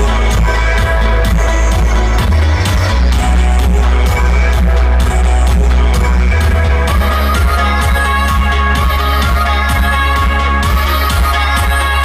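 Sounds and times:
electronic dance music: 0.0 - 12.0
heavy sub-bass line: 0.0 - 12.0.

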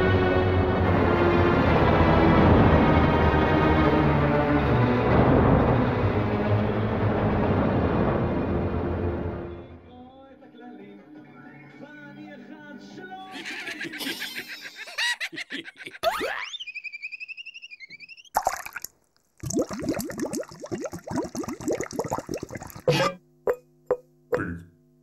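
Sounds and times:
cartoon liquid plopping and bubbling: 16.0 - 16.6, 18.2 - 24.6
warbling whistle-like tone: 16.3 - 18.4.

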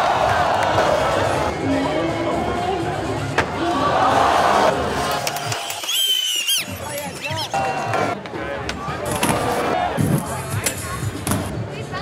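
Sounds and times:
crowd cheering and yelling: 0.0 - 10.3.

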